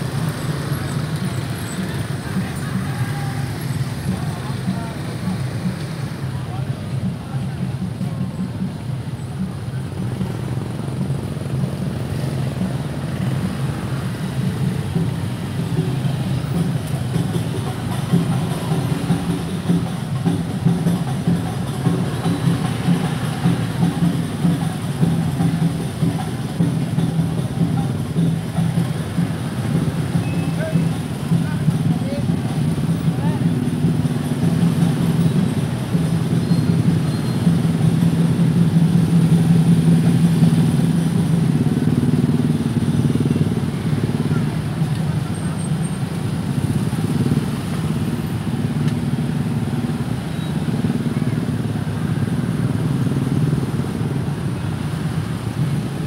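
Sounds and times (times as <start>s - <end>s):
motor scooters engine hum: 0.0s - 56.0s.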